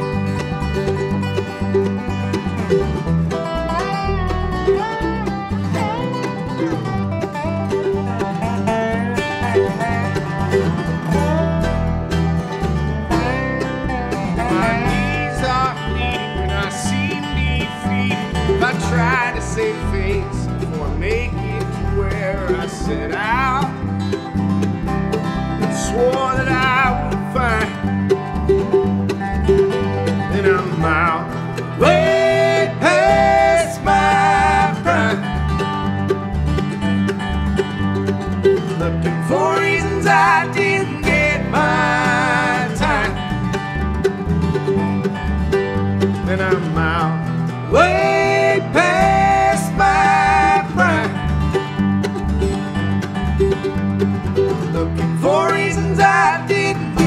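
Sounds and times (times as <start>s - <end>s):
bluegrass band playing: 0.0s - 57.0s.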